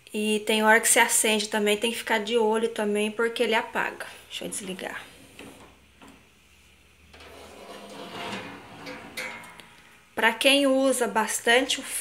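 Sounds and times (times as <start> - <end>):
oven door rubbing and scraping: 4.4 - 6.2, 7.0 - 9.7.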